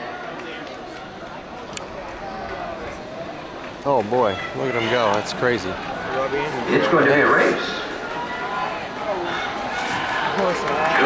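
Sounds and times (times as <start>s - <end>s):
crowd chatter and calls: 0.0s - 11.0s.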